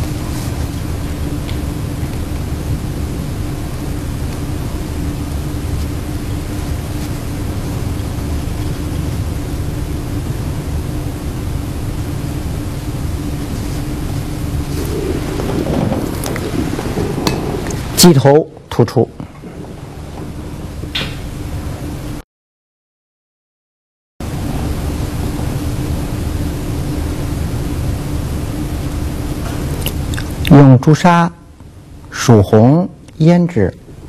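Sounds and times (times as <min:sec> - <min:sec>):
constant low hum: 0:00.0 - 0:22.2, 0:24.2 - 0:34.0
rumbling background noise: 0:00.0 - 0:22.2, 0:24.2 - 0:34.0.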